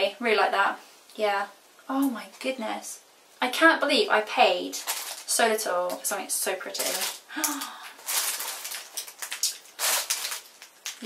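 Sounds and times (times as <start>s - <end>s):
makeup brushes rustling: 4.8s - 11.0s.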